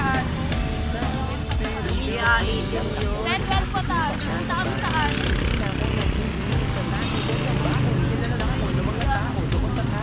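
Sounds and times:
people talking: 1.0s - 10.0s.

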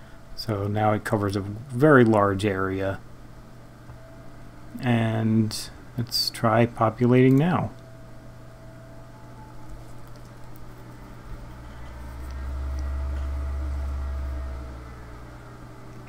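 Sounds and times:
faint room noise: 0.0s - 16.0s
low rumbling hum: 7.7s - 16.0s.

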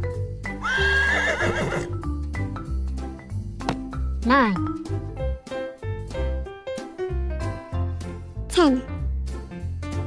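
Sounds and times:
children's music with bass line: 0.0s - 0.7s, 1.9s - 10.0s
horse whinnying: 0.6s - 2.0s.

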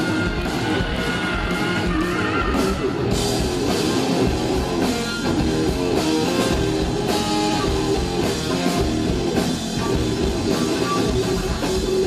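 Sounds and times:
hard rock band playing: 0.0s - 12.0s.

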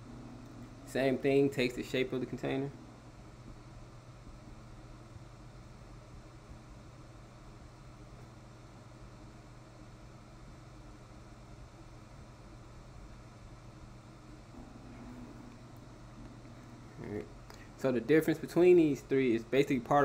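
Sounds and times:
low hum with hiss: 0.0s - 20.0s.

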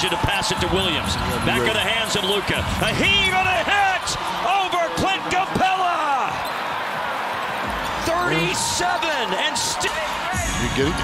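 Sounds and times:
commentator's voice: 0.0s - 6.4s, 8.0s - 11.0s
arena crowd hubbub: 0.0s - 11.0s.

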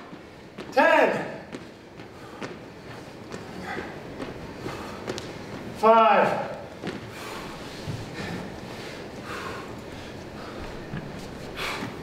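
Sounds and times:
sneakers on hardwood floor: 6.7s - 8.1s.

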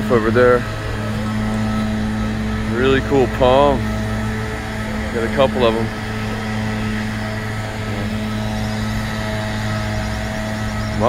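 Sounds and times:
leaf blower engine droning: 0.0s - 11.0s.

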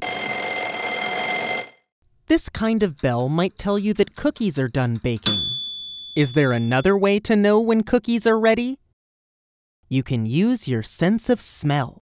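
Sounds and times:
alarm clock bells ringing: 0.0s - 1.8s, 5.3s - 7.0s.

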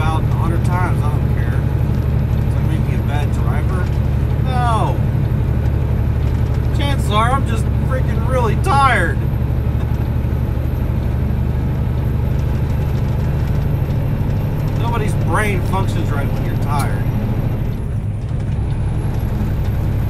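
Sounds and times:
road noise: 0.0s - 20.0s
truck engine drone: 0.0s - 20.0s.

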